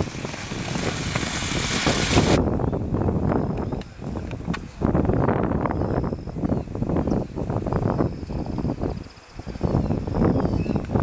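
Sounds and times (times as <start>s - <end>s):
horse galloping on dirt: 0.0s - 2.4s
wind on microphone: 0.0s - 11.0s.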